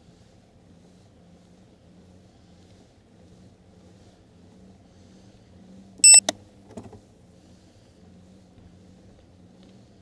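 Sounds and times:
high-pitched electronic beep: 6.0 - 6.2.

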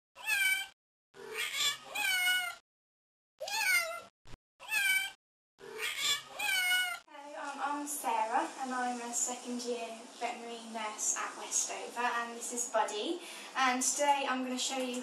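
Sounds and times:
cat meowing: 0.2 - 2.6, 3.4 - 5.2, 5.8 - 7.0.

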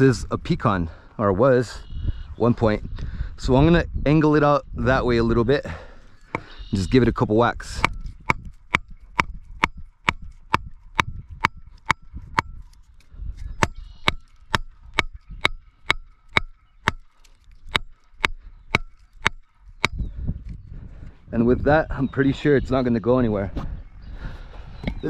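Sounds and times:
log hammering metal stake: 7.7 - 12.8, 13.5 - 20.0.

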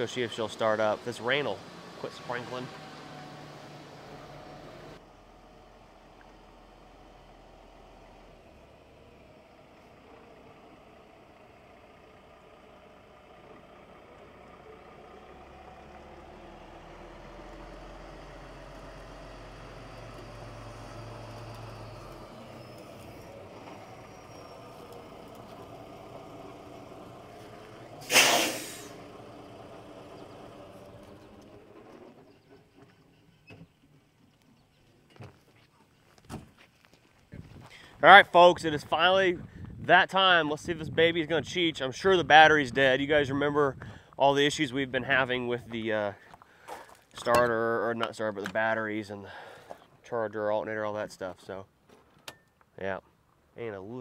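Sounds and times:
truck diesel engine running: 0.0 - 34.4
air brakes hiss: 28.0 - 29.0.

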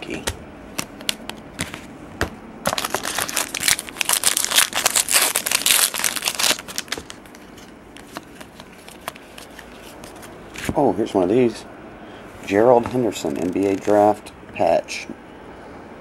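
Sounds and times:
cards handled ticking: 0.1 - 1.8, 2.7 - 10.3
plastic wrapper tearing and crumpling: 2.6 - 7.4.

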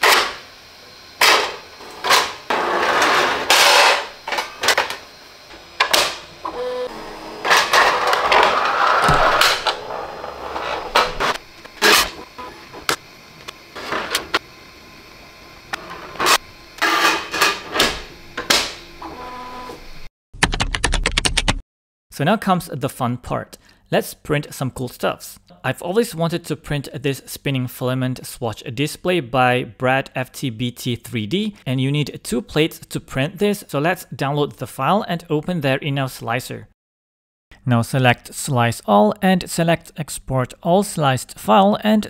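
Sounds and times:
printer motors driving: 0.0 - 20.1.

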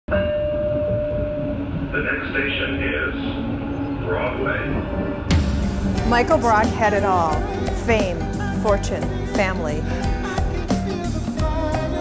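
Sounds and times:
high steady whine: 0.1 - 9.2
train car low rumble: 0.1 - 11.9.

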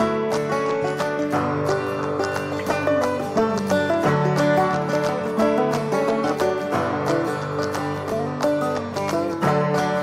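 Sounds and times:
country tune on acoustic guitar: 0.0 - 10.0.

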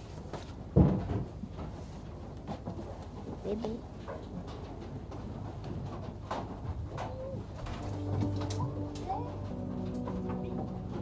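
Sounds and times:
low hum: 7.6 - 11.0.

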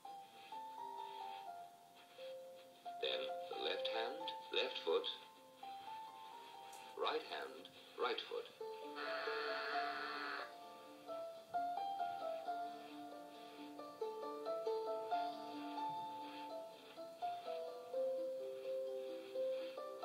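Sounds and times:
soundtrack music from small speaker: 0.0 - 20.0.

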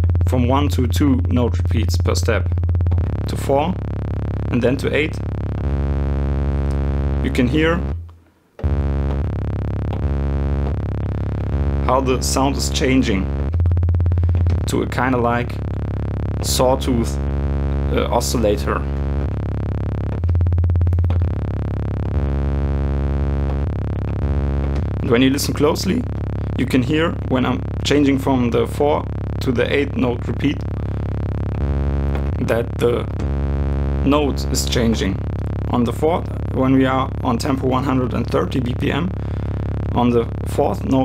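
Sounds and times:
drum machine buzzing bass tone: 0.0 - 8.0, 8.6 - 41.0.

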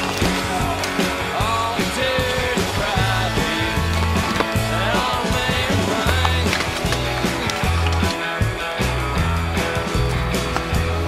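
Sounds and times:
rock music with guitar: 0.0 - 11.0.

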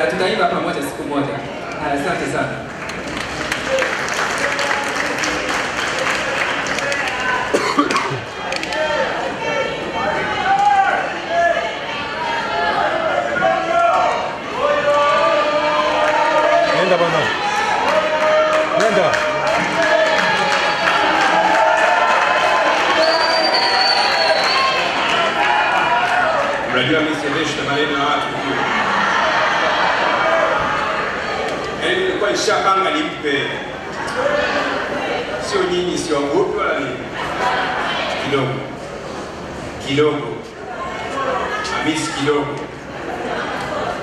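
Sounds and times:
audience clapping and cheering: 2.6 - 9.4, 15.6 - 27.4.

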